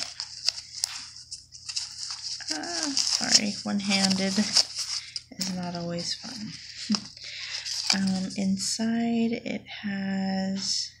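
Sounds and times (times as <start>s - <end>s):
rustling of wrapping and case: 0.0s - 8.4s.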